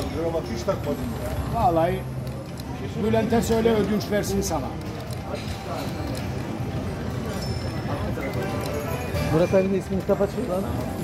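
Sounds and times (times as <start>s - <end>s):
casino background chatter: 0.0s - 11.0s.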